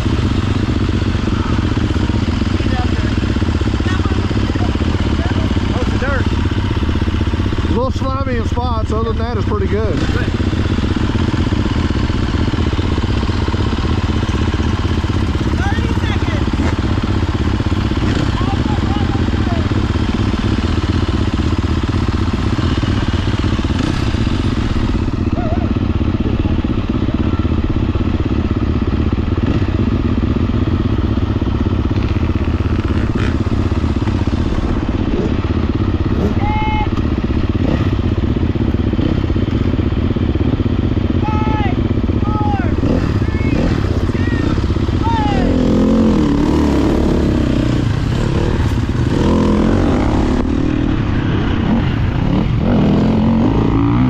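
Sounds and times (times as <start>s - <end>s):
dirt bike engine idling and revving: 0.0s - 54.0s.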